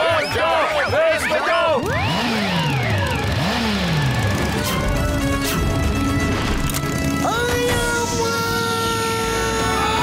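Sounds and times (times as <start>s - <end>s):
background music: 0.0s - 10.0s
cartoon engine revving: 0.4s - 10.0s.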